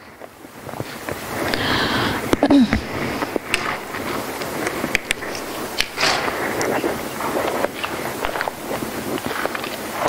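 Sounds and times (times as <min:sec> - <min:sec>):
person sniffing: 0:01.5 - 0:03.8.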